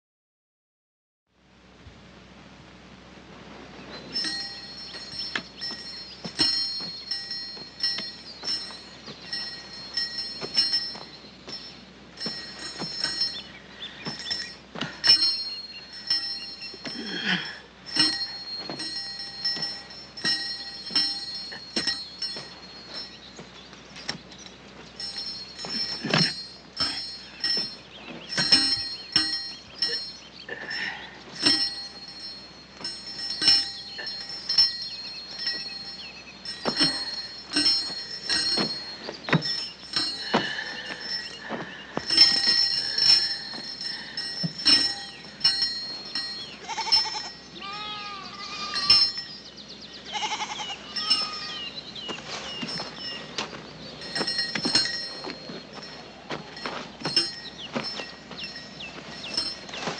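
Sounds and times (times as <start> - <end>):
small metal bells jingling: 3.9 - 59.9.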